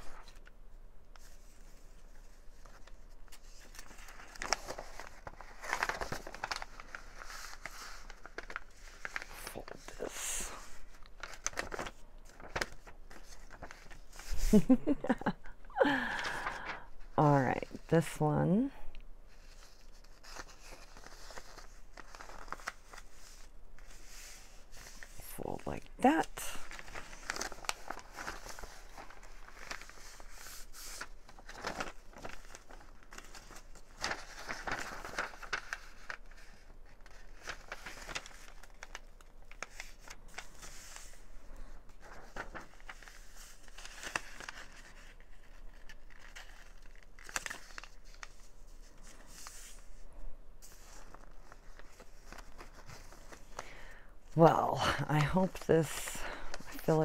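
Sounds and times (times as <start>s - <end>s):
paper rustling and crinkling: 0.0s - 57.0s.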